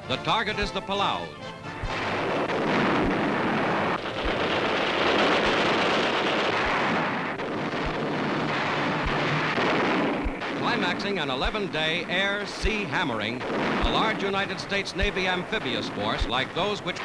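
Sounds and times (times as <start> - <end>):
rumble of gunfire and explosions: 0.0 - 17.0.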